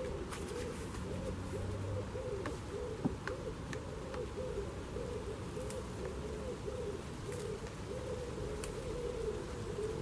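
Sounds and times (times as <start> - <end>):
bird cooing: 0.0 - 10.0.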